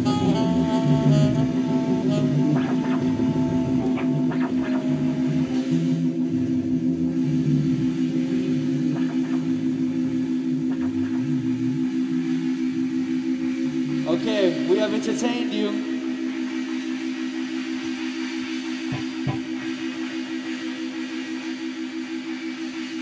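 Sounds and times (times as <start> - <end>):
guitar: 0.0 - 12.0
bass line: 0.0 - 17.4
low drone: 0.0 - 23.0.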